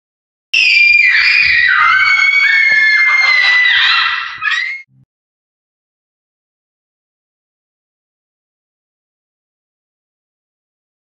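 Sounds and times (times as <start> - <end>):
children screaming: 0.6 - 4.9.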